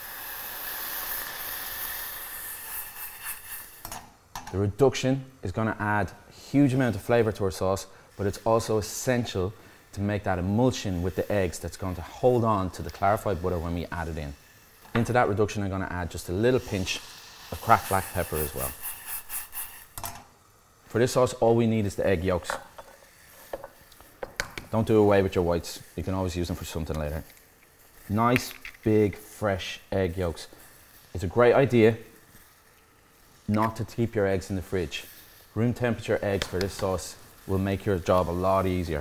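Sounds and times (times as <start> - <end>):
vinegar sizzling in hot saucepan: 0.0 - 39.0.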